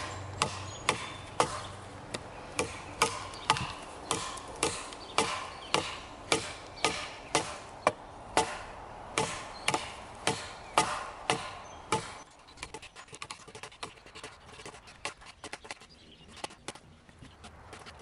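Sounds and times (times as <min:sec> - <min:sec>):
knife chopping into branch: 0:00.0 - 0:12.3.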